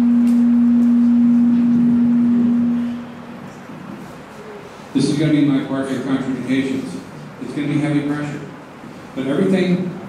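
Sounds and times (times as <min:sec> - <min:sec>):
microphone feedback hum: 0:00.0 - 0:03.7.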